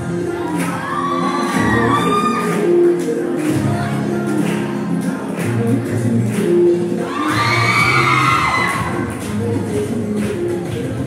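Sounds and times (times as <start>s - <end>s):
dance music: 0.0s - 11.0s
children cheering: 0.3s - 2.7s, 7.0s - 9.0s.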